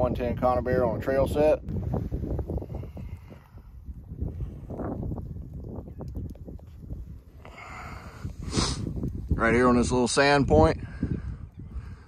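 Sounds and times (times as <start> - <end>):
wind buffeting microphone: 0.0 - 12.0
short breathy rush: 7.4 - 9.0.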